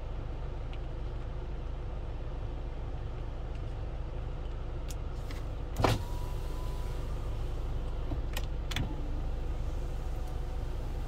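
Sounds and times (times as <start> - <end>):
car engine hum in cabin: 0.0 - 11.0.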